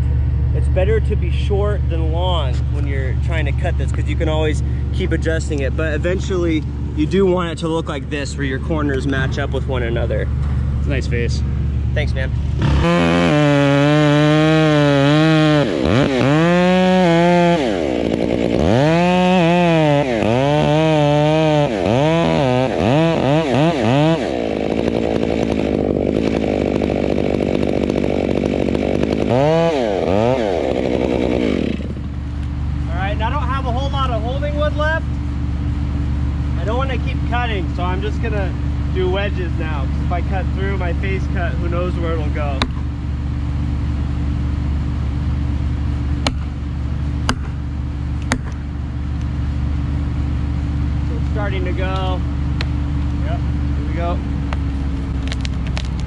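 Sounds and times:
chainsaw engine revving: 12.2 - 33.4
axe knocking a wedge: 46.2 - 46.6, 47.2 - 47.6, 48.2 - 48.6.

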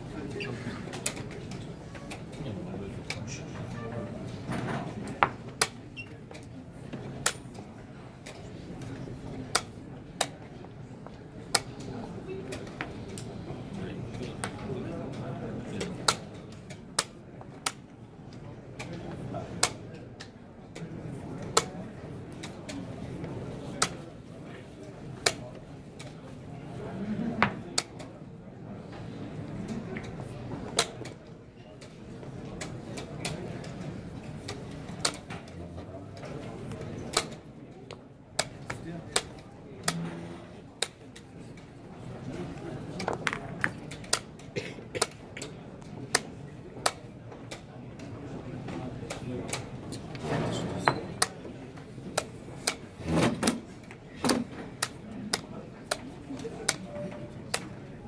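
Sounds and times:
murmur of voices: 0.0 - 58.0.

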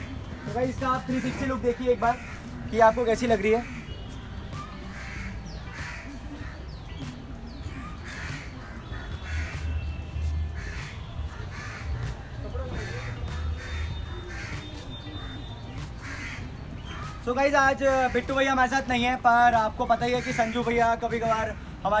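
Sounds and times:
faint voices: 0.0 - 17.2
birds calling: 0.0 - 22.0.

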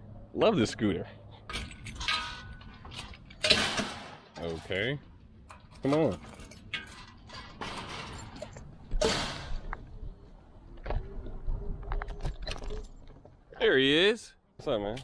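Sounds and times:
metal mesh gate rattling: 1.5 - 9.7
loud metallic clank: 3.4 - 4.3, 8.9 - 9.7.

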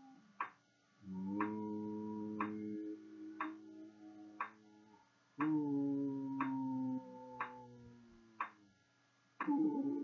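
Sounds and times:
metronome-like ticks: 0.0 - 4.7, 5.4 - 8.7, 9.4 - 9.8
sustained tone with overtones: 1.0 - 8.8, 9.4 - 10.0.

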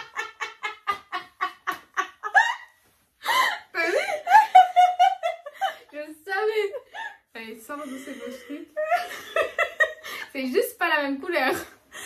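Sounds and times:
women laughing: 0.0 - 7.2, 7.8 - 10.3.

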